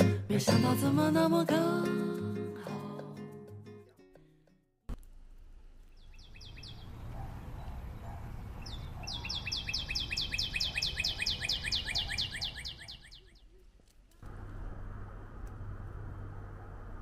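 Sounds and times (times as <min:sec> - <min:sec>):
songbird trilling: 0:06.0 - 0:07.1, 0:08.6 - 0:13.5
low steady rumble: 0:14.2 - 0:17.0.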